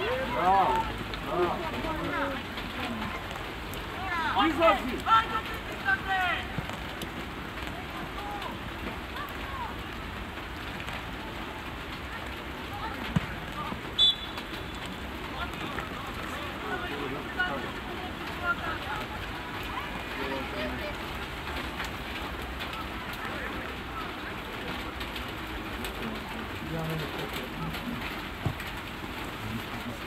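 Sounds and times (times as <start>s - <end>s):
boys shouting: 0.0s - 2.4s, 3.9s - 6.6s
referee whistle blast: 14.0s - 14.8s.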